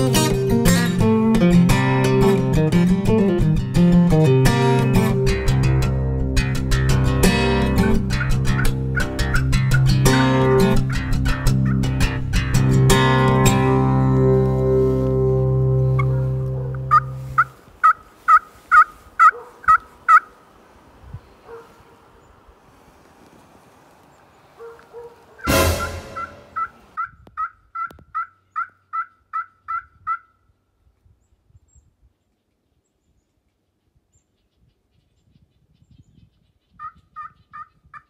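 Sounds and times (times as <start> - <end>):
plucked guitar music: 0.0 - 17.5, 25.5 - 27.0
wild turkey yelping: 16.0 - 20.4, 26.2 - 30.3.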